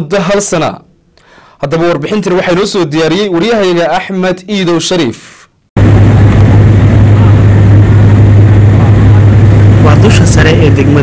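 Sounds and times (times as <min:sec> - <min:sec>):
aircraft cabin engine noise: 0:05.8 - 0:11.0.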